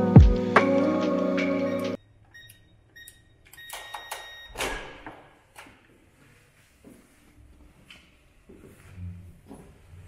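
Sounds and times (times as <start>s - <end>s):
keypad beeps: 2.3s - 4.6s
long keypad beep: 2.4s - 4.6s.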